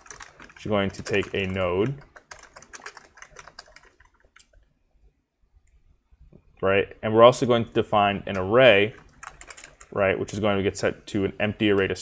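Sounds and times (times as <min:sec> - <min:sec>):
computer keyboard typing: 0:00.0 - 0:04.6, 0:08.3 - 0:10.0.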